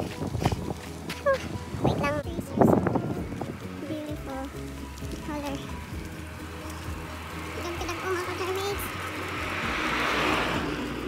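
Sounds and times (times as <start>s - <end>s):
car passing by: 2.7s - 11.0s.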